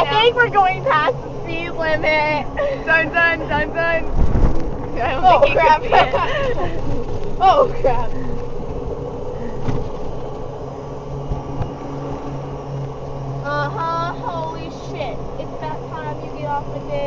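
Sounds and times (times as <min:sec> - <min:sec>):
golf cart hum: 0:00.0 - 0:17.0
rumble of wheels over ground: 0:00.0 - 0:17.0.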